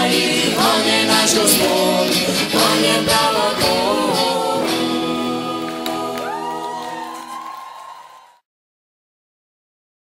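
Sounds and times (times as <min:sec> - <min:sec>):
live band held chord: 0:00.0 - 0:07.2
crowd cheering: 0:05.6 - 0:08.4
long high whoop: 0:06.2 - 0:08.4.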